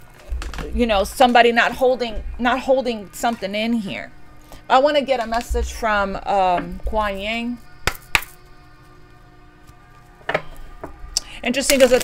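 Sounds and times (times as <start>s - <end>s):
faint steady background tones: 0.0s - 12.0s.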